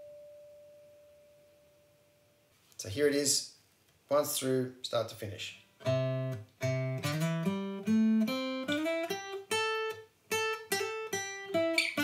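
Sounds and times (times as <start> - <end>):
acoustic guitar high note ringing: 0.0 - 2.3, 5.8 - 12.0.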